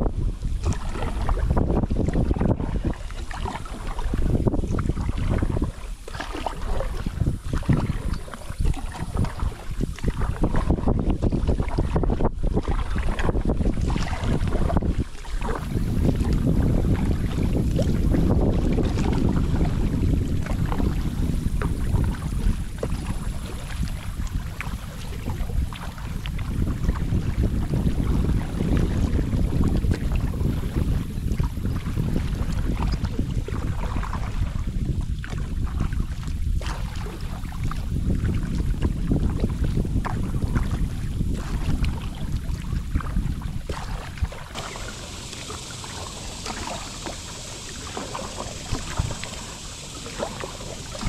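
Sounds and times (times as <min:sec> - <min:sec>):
paddle splashing in water: 0:00.0 - 0:51.0
wind buffeting microphone: 0:00.0 - 0:51.0.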